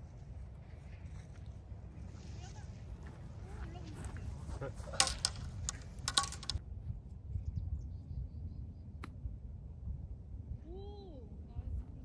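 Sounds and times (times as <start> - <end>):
wind rumble on microphone: 0.0 - 12.0
sharp clicks and clinks: 5.0 - 6.6.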